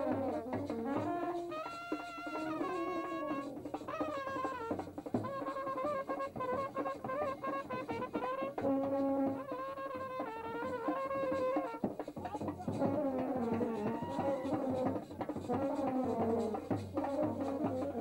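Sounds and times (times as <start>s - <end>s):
brass band playing: 0.0s - 11.9s, 12.7s - 18.0s
drums: 0.0s - 18.0s.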